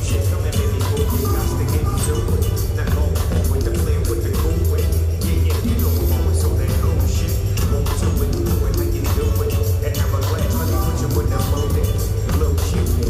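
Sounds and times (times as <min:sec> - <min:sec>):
heavy bass line: 0:00.0 - 0:13.0
live concert music: 0:00.0 - 0:13.0.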